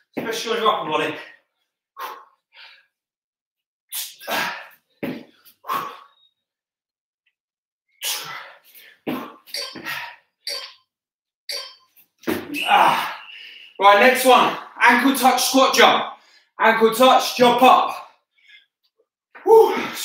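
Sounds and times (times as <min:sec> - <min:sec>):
man breathing hard: 0:01.2 - 0:03.0, 0:04.1 - 0:06.2, 0:08.0 - 0:10.4, 0:12.9 - 0:13.8.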